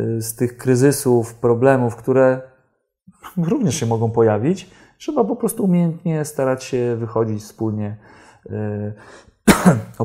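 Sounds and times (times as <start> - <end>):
man clearing throat: 9.5 - 10.0.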